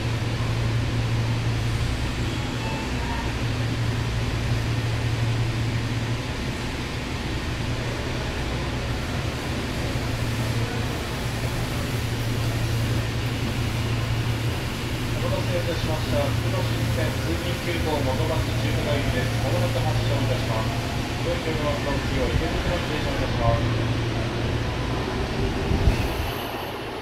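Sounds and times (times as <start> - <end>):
train air conditioning hum: 0.0 - 27.0.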